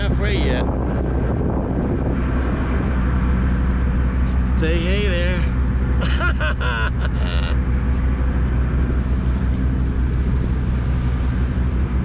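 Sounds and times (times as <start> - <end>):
ship engines droning: 0.0 - 12.0
water noise: 0.0 - 12.0
wind: 0.0 - 12.0.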